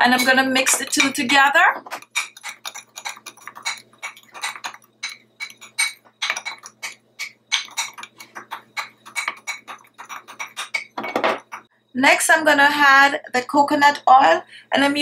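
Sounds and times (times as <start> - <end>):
spoon stirring in glass bowl: 0.0 - 11.7.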